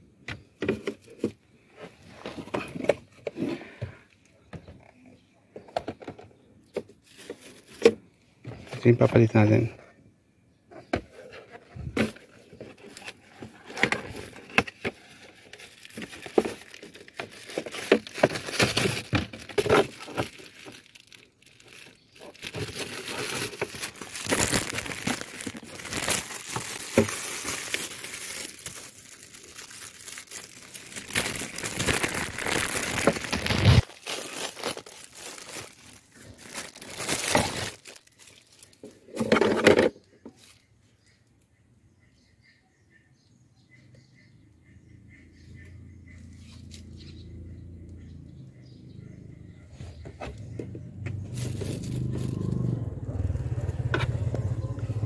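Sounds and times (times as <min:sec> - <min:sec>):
plastic and cardboard crinkling: 0:00.6 - 0:04.0, 0:05.6 - 0:09.7, 0:11.0 - 0:40.6, 0:51.2 - 0:55.0.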